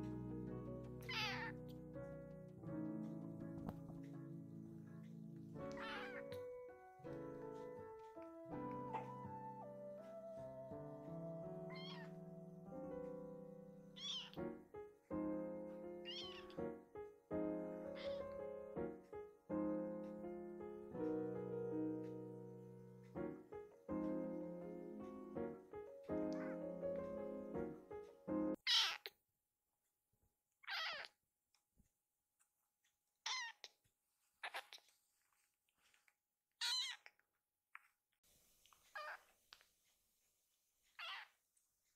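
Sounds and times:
background piano music: 0.0 - 28.7
kitten meowing: 1.0 - 1.6, 5.6 - 6.5, 11.6 - 12.2, 13.9 - 14.4, 16.0 - 16.6, 17.9 - 18.4, 28.6 - 29.1, 30.6 - 31.1, 33.3 - 33.7, 36.6 - 37.1, 38.9 - 39.3, 41.0 - 41.3
kitten mewing: 1.0 - 1.6, 5.7 - 6.5, 11.7 - 12.2, 14.0 - 14.4.

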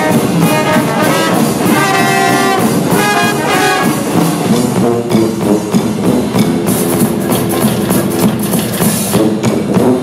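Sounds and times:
drum kit hits: 0.0 - 9.7.

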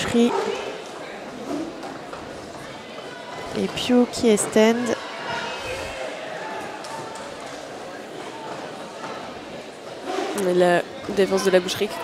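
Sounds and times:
distant voices and crowd murmur: 0.0 - 12.0.

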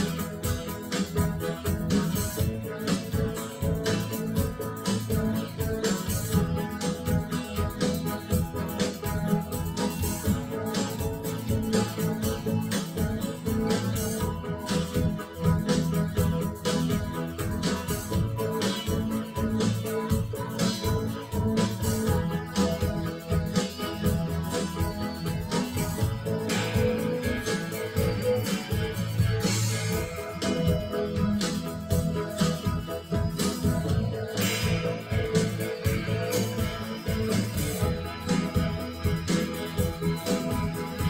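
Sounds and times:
guitar band music over speakers: 0.0 - 41.0.

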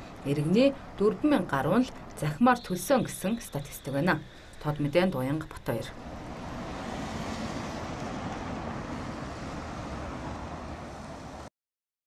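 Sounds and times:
cars driving past: 5.6 - 11.5.

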